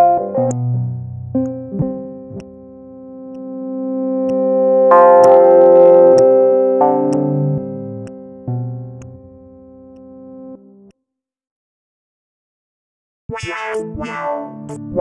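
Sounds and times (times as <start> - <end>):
synthesizer sustained notes: 0.0 - 10.8.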